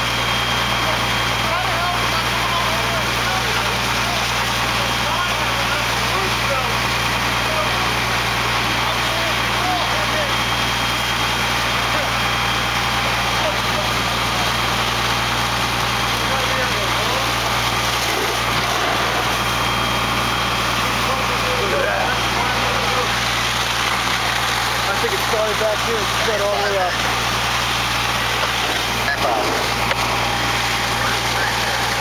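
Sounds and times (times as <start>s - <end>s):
fire truck engines rumbling: 0.0s - 32.0s.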